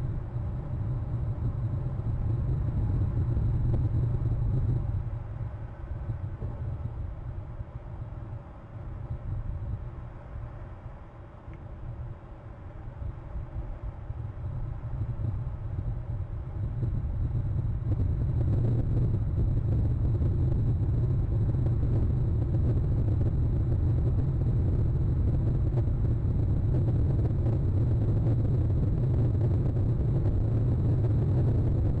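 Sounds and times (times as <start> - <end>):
steady low rumble: 0.0 - 32.0.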